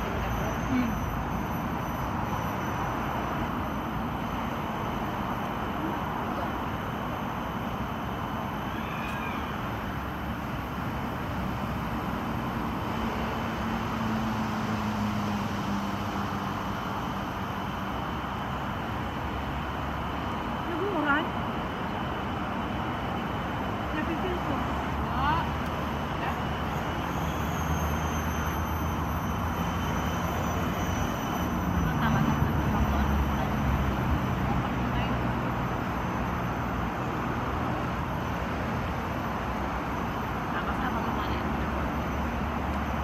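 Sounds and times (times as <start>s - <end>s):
people talking: 0.0s - 1.0s, 20.7s - 21.3s, 23.9s - 26.6s, 31.8s - 35.3s, 40.5s - 42.0s
city traffic rumble: 0.0s - 43.0s.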